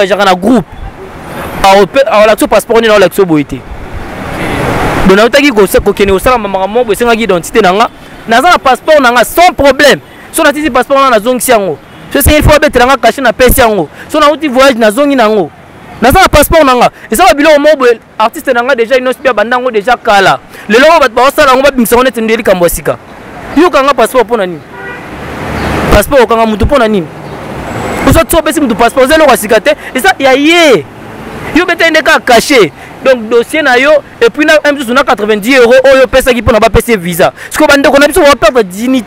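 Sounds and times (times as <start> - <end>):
man talking animatedly: 0.0 - 0.7, 1.5 - 3.7, 5.0 - 24.7, 25.8 - 27.2, 27.9 - 39.0
road traffic: 0.0 - 39.0.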